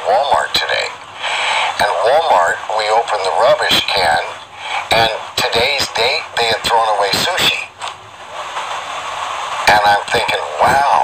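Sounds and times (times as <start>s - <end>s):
man speaking: 0.0s - 1.0s, 1.6s - 7.8s, 9.7s - 11.0s
steady background hiss: 0.0s - 11.0s.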